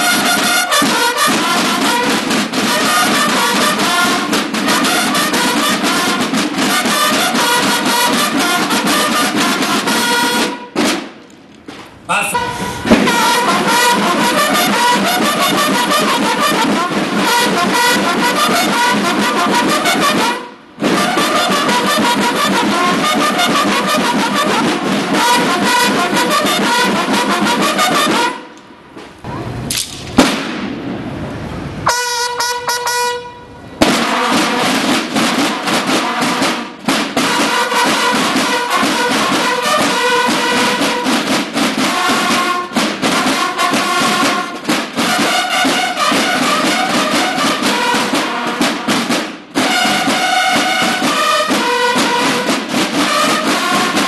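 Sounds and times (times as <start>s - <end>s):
bugles sounding a call: 0.0s - 10.9s, 12.0s - 28.6s, 31.9s - 54.0s
field drums beating: 0.0s - 29.1s, 30.1s - 30.9s, 33.8s - 54.0s.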